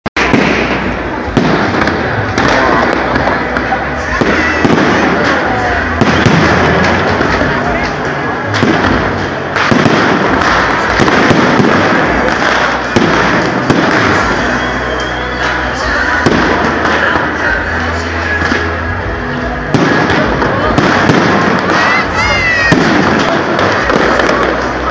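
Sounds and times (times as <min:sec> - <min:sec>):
din of small explosions: 0:00.2 - 0:14.5, 0:19.7 - 0:24.9.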